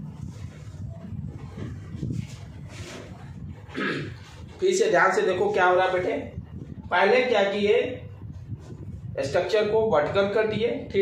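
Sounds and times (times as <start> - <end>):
duster rubbing on whiteboard: 0.1 - 3.6.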